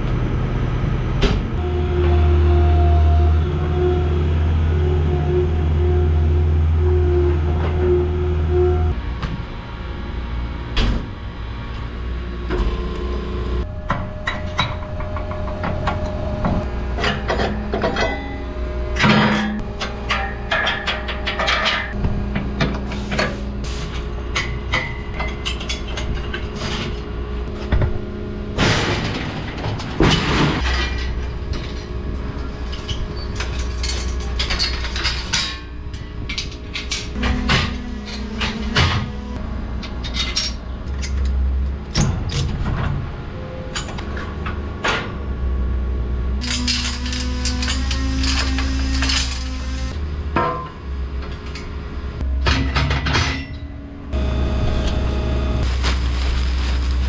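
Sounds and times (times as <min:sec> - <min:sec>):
metal clanks and rattles: 0:13.6 - 0:28.0, 0:28.6 - 0:41.3, 0:46.4 - 0:53.8
skid steer engine running: 0:37.1 - 0:40.0, 0:44.6 - 0:50.2, 0:54.0 - 0:57.0.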